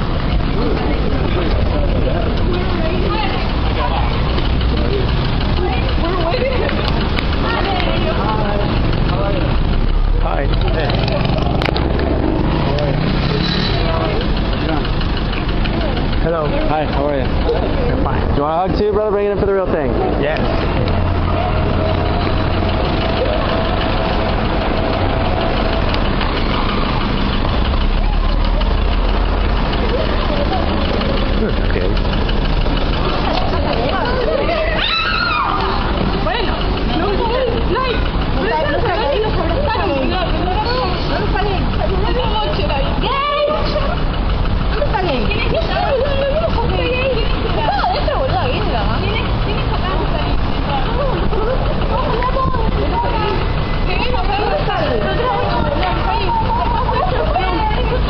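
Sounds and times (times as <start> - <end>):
crowd chatter: 0.0 - 58.0
vehicle engine idling: 0.0 - 58.0
steady low rumble: 13.8 - 58.0.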